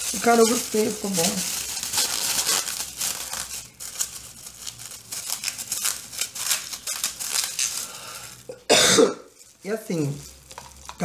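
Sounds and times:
scratchy rustling and crinkling: 0.0s - 8.5s, 9.3s - 11.0s.

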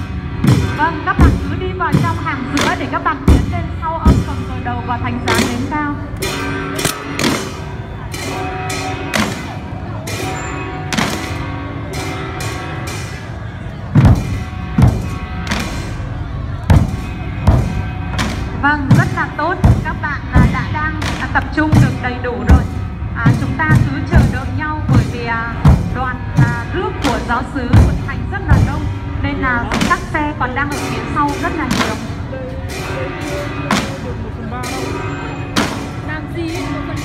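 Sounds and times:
smaller drums: 0.0s - 37.0s
deep barrel drum strikes: 0.4s - 4.5s, 13.9s - 15.8s, 16.6s - 29.0s.

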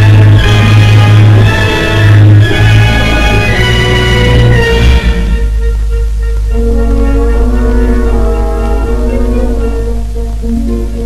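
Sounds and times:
low drone: 0.0s - 11.0s
sustained music chords: 0.0s - 11.0s.

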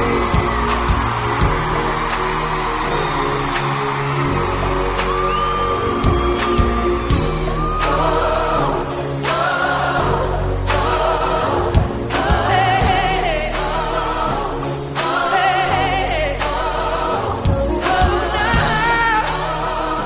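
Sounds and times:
backing track music: 0.0s - 20.0s
voices singing held notes: 7.8s - 20.0s.

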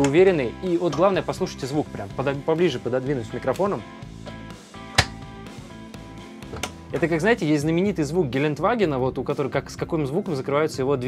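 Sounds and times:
background music: 0.0s - 11.0s
cabinet door shutting click: 4.9s - 5.2s.

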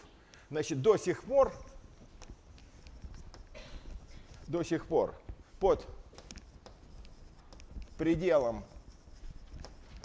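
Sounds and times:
chalk scratching on blackboard: 0.8s - 10.0s.

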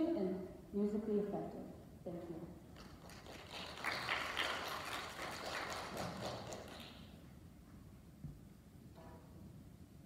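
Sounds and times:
audience applauding: 2.8s - 7.1s.

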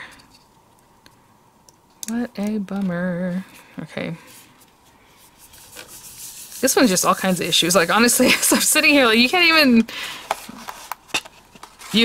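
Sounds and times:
paper card rustling: 10.2s - 12.0s.

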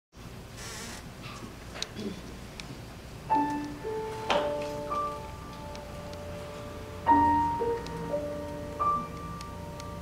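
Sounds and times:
steady low hum: 0.2s - 10.0s.

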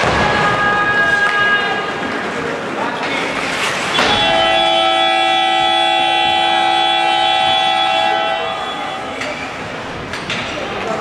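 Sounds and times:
arena horn blast: 3.9s - 9.7s.

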